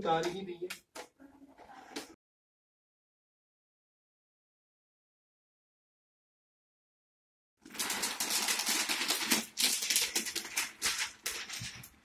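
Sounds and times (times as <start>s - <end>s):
plastic film peeling crackle: 7.6s - 12.0s.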